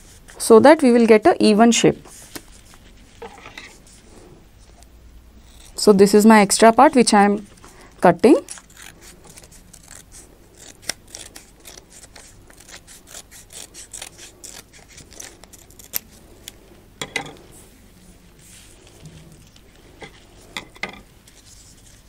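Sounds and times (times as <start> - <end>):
paper rustling: 2.0 - 4.8
scissors snipping paper: 8.2 - 16.6.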